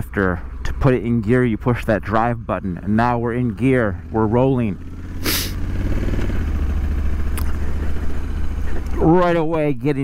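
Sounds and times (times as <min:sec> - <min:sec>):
motorcycle engine running: 0:00.0 - 0:10.0
brief hiss: 0:05.2 - 0:05.6.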